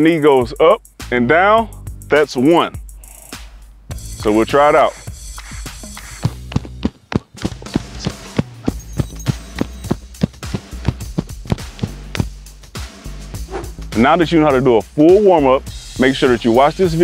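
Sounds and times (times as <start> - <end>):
background music with steady beat: 0.0 - 17.0
feet thudding on grass: 5.1 - 12.5.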